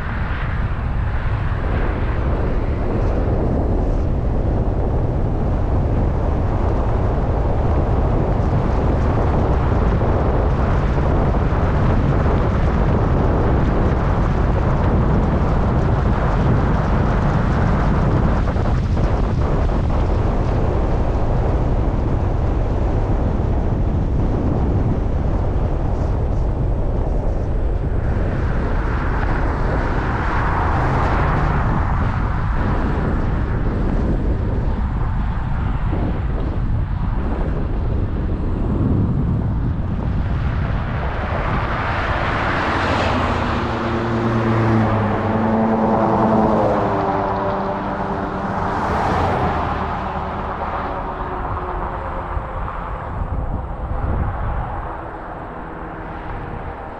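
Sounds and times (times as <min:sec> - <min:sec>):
engine hum: 0:00.0 - 0:56.9
vehicle tyre noise: 0:00.0 - 0:56.9
wind rumbling on microphone: 0:00.0 - 0:56.9.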